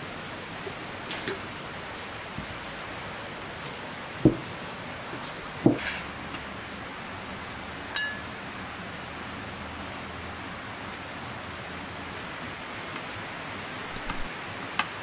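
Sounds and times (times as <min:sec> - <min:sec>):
background hiss: 0:00.0 - 0:15.0
metal spoon clinking on dish: 0:08.0 - 0:08.3.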